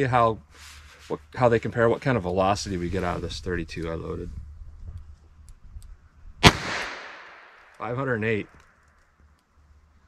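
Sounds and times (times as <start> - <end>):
revolver gunshot with echo: 6.4 - 7.6.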